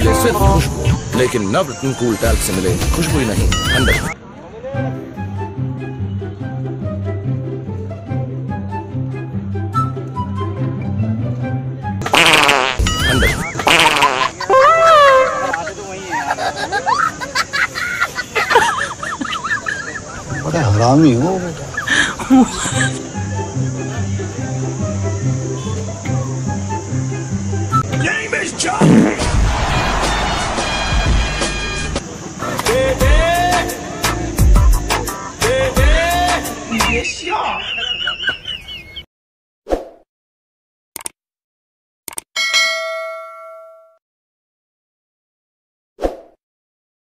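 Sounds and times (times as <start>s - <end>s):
fake wet fart sound effect: 12.0s - 14.4s, 28.8s - 29.3s
notification bell chime: 42.4s - 44.0s.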